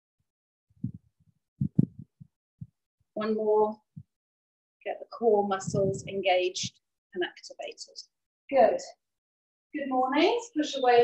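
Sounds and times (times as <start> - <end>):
soft low body thumps: 0.8 - 2.8.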